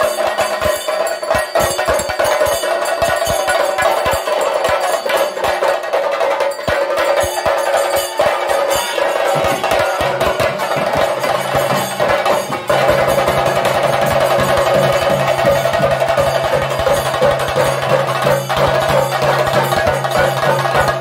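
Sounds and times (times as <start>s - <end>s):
drums beaten with sticks: 0.0s - 21.0s.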